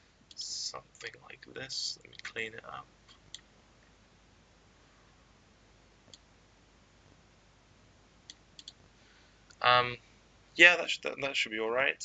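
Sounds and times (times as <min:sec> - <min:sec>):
faint computer mouse clicks: 0:08.3 - 0:08.8.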